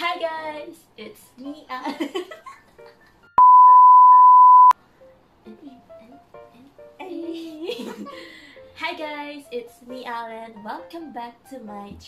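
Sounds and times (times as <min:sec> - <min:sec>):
soft background music: 0:00.0 - 0:03.4, 0:04.8 - 0:12.0
electronic bleep tone: 0:03.4 - 0:04.8.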